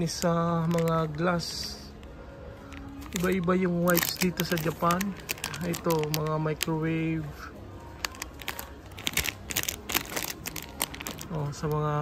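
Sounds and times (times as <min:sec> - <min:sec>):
plastic packet crinkling: 0:00.0 - 0:01.6, 0:02.7 - 0:07.3, 0:08.0 - 0:12.0.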